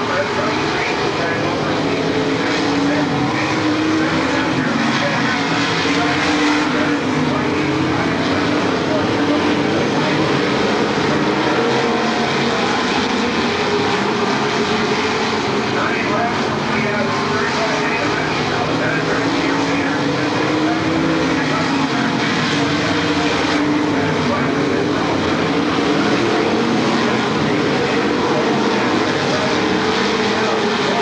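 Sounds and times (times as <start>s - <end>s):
race car engines droning: 0.0s - 31.0s.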